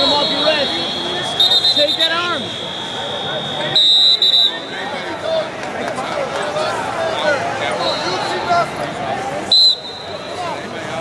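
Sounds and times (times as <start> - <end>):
referee's whistle blast: 0.0 - 4.8, 9.5 - 10.3
arena voices and chatter: 0.0 - 11.0.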